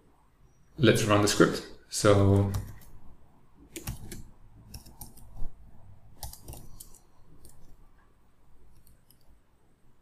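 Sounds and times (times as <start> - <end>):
keyboard typing clicks: 2.4 - 3.0, 3.7 - 5.4, 6.1 - 7.8.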